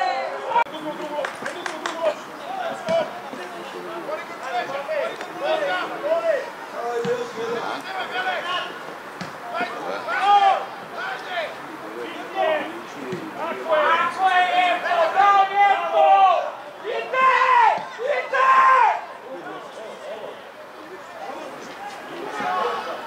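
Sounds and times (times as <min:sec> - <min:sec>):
men shouting high-pitched calls: 0:09.5 - 0:19.2.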